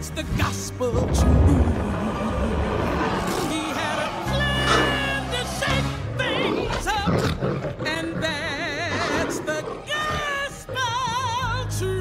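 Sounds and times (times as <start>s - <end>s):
cartoon monster roaring and growling: 1.2s - 11.4s.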